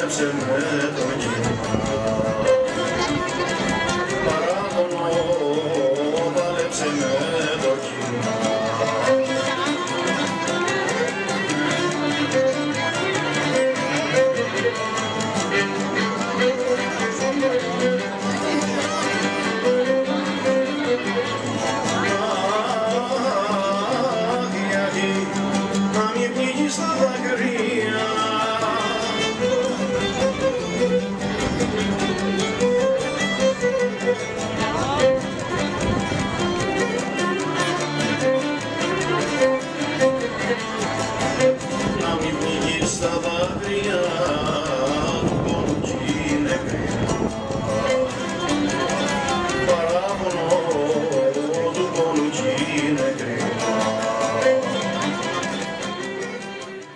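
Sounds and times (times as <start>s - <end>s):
bowed string melody: 0.0s - 56.9s
plucked string rhythm: 0.0s - 56.9s
strummed lute: 0.0s - 56.9s.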